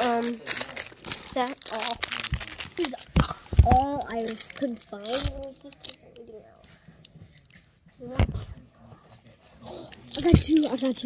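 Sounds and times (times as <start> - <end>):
plastic wrappers crinkling: 0.0 - 6.3, 9.9 - 11.0.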